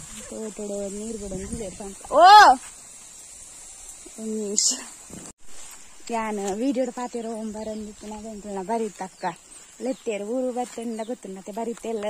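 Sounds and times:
woman talking: 0.2s - 2.6s, 4.1s - 4.9s, 6.0s - 12.0s.

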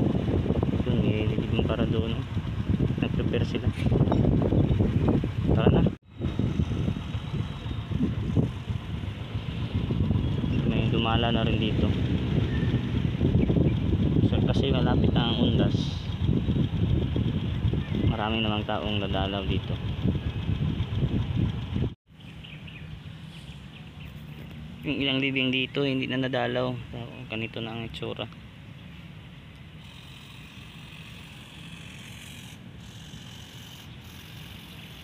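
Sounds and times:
wind buffeting microphone: 0.0s - 23.0s
loud uneven low rumble: 0.0s - 29.6s
steady low hum: 0.0s - 35.0s.

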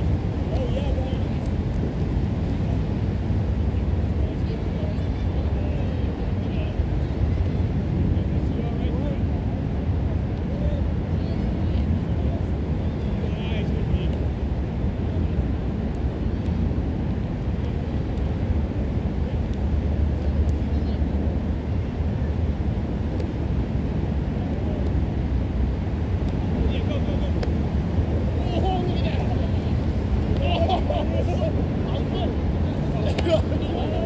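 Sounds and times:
low outdoor rumble: 0.0s - 34.0s.

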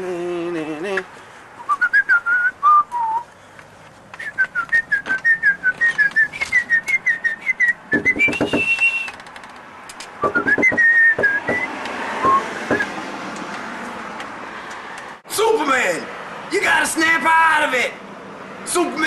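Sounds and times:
man whistling a tune: 1.6s - 3.3s, 4.2s - 9.2s, 10.2s - 12.9s
knocks on a front door: 8.0s - 8.7s, 10.2s - 12.9s.

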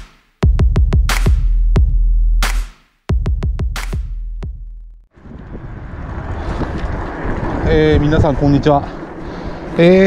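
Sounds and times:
wind buffeting microphone: 5.1s - 10.0s.

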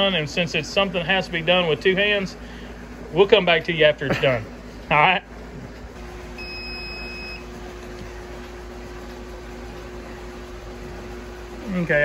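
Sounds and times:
steady low hum: 0.0s - 12.0s
electronic dispenser beep: 6.4s - 7.5s.

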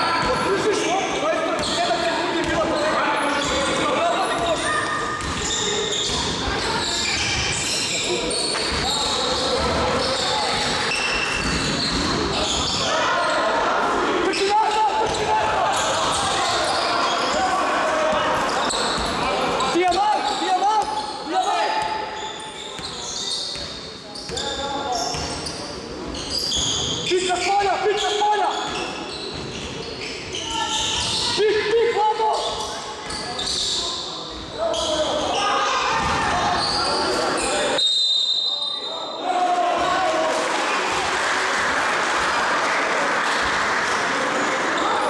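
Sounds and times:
people shouting: 12.8s - 18.4s
high whistle: 37.8s - 39.2s.

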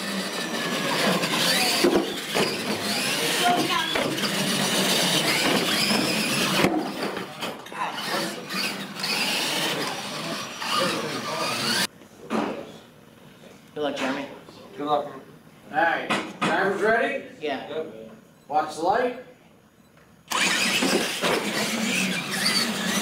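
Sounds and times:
rc truck motors whining: 0.0s - 11.9s, 20.3s - 23.0s.

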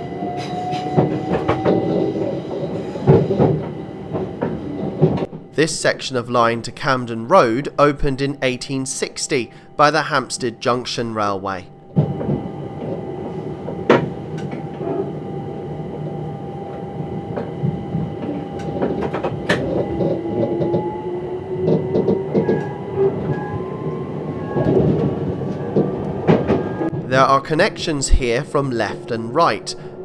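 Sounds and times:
train rumbling along track: 0.0s - 30.0s.

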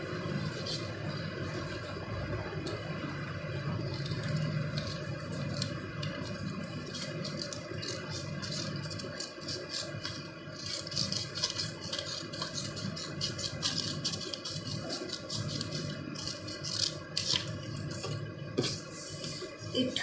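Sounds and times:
low background hum: 0.0s - 20.0s
scissors snipping paper: 3.8s - 18.2s.

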